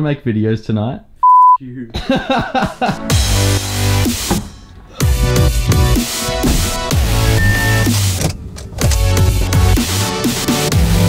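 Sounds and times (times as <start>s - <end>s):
man talking: 0.0s - 2.2s
censor bleep tone: 1.2s - 1.6s.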